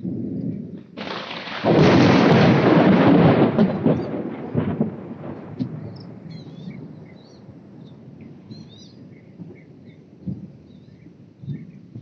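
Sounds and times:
deep thunder rumble: 0.0s - 12.0s.

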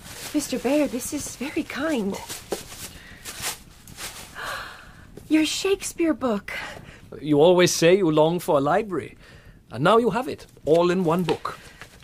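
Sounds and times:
person gasping breath: 4.4s - 5.1s.

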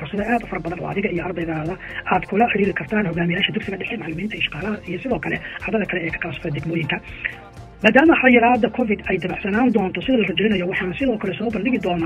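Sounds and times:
narrator talking: 0.0s - 12.0s.

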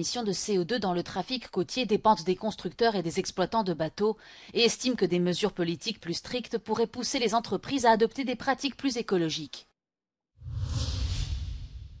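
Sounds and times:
whoosh with deep rumble: 10.4s - 12.0s.

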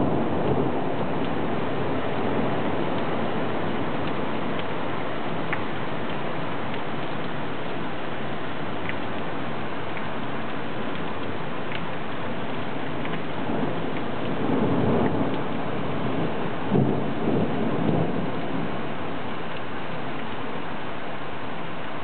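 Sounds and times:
thunder rumbling: 0.0s - 8.0s, 8.6s - 20.4s
heavy rain falling: 0.0s - 22.0s.

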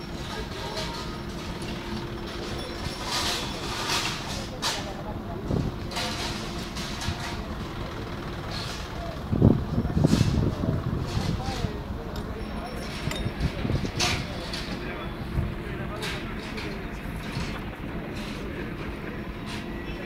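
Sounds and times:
onlookers' voices: 0.0s - 20.0s.

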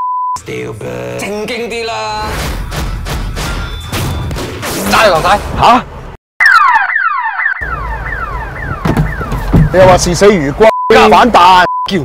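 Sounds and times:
car alarm whooping: 6.4s - 10.0s.

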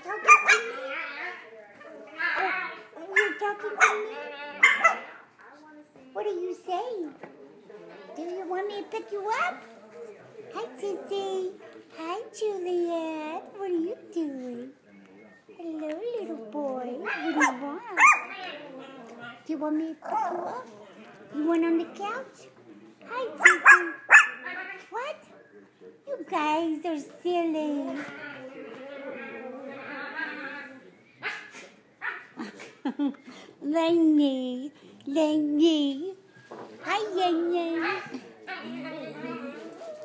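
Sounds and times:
puppy barking: 0.2s - 1.0s, 3.2s - 5.2s, 17.0s - 18.9s, 23.4s - 24.8s, 31.2s - 32.4s.

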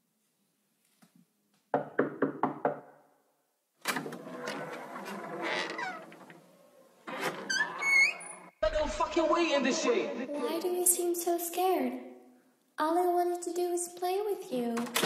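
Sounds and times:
sampled voices: 8.6s - 11.9s.

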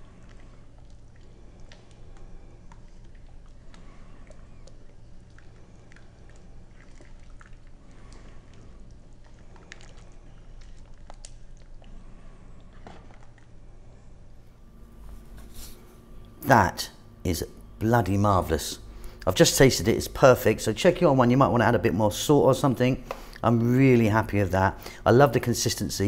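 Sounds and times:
wet squelching of soup: 0.0s - 13.6s
low steady hum: 0.0s - 26.0s.

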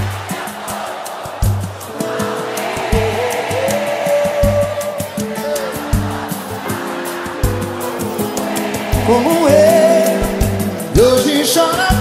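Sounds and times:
band playing: 0.0s - 12.0s
percussion strokes: 0.0s - 12.0s.

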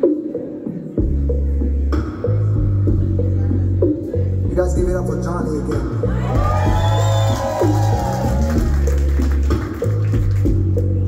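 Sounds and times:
live band playing: 0.0s - 11.0s
deep electric bass line: 1.0s - 11.0s.

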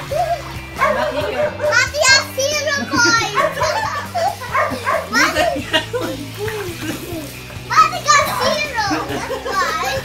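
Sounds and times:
background music: 0.0s - 10.0s
children calling and shouting: 0.0s - 10.0s.

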